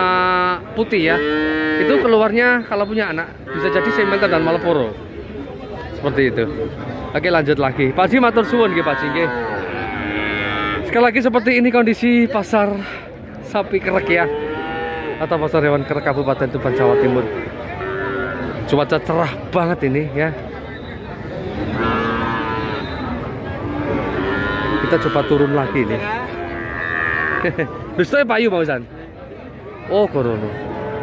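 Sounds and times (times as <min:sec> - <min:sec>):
crowd hubbub: 0:00.0 - 0:31.0
cow mooing: 0:01.0 - 0:02.1, 0:03.5 - 0:04.6, 0:08.3 - 0:11.0, 0:14.0 - 0:15.4, 0:16.8 - 0:18.6, 0:21.6 - 0:23.0, 0:23.7 - 0:27.6.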